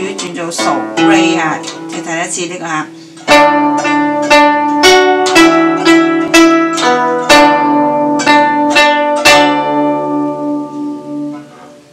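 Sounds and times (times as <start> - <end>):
plucked zither notes: 0.0 - 11.9.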